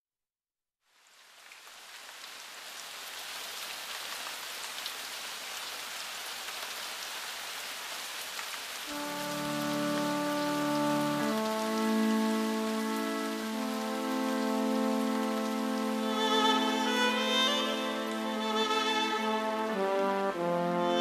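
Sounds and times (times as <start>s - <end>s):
steady rain falling: 0.8s - 21.0s
sustained music chords: 8.9s - 21.0s.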